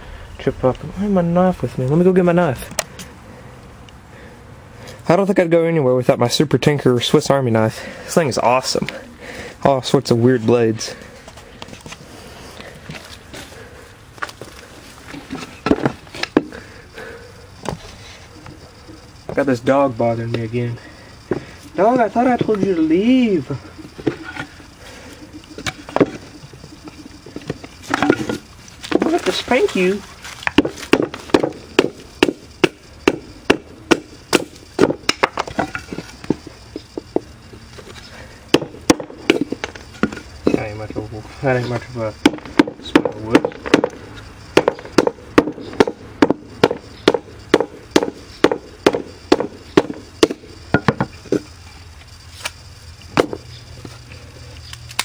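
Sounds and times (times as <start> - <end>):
wooden boards knocking: 30.4 - 36.4, 38.5 - 40.2, 42.2 - 51.5.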